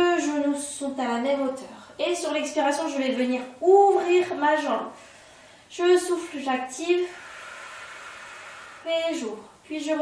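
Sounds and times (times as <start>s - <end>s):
woman speaking: 0.0s - 5.0s, 5.7s - 7.2s, 8.8s - 10.0s
woman exhaling through the mouth: 7.0s - 9.0s.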